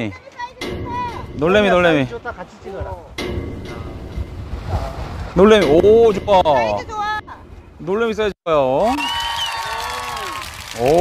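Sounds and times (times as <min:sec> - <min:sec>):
wind rushing: 0:00.6 - 0:08.4
surf: 0:01.5 - 0:08.3.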